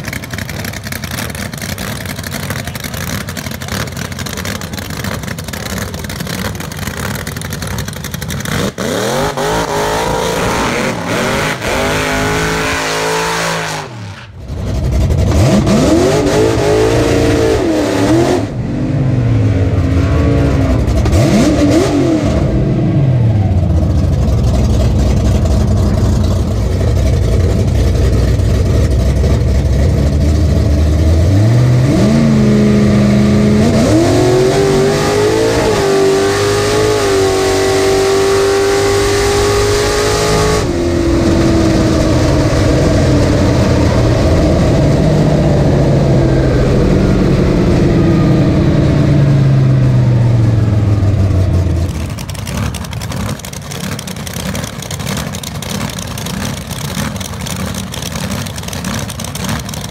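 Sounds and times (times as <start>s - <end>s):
car engine revving: 0.0s - 59.9s.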